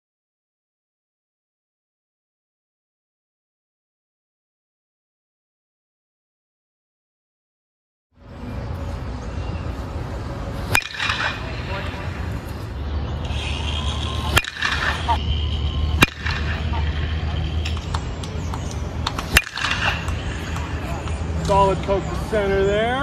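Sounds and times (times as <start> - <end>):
steady low rumble: 8.2 - 22.9
bat hitting baseball: 10.6 - 12.3, 13.3 - 15.2, 15.9 - 21.2.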